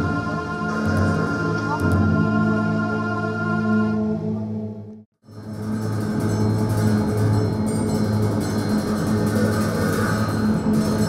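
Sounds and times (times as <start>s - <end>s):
low steady drone: 0.0s - 11.0s
brass hand cymbals ringing: 5.3s - 11.0s.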